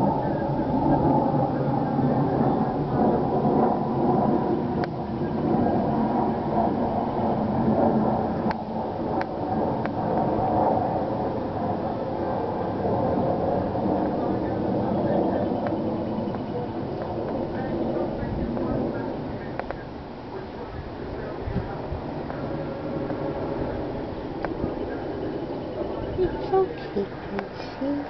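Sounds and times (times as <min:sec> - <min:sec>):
low mechanical drone: 0:00.0 - 0:28.0.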